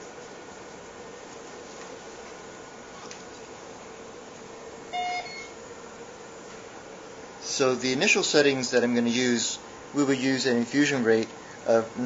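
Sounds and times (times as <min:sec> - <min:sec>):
faint steady hum: 0:00.0 - 0:12.0
syringe pump electronic beep: 0:04.9 - 0:05.6.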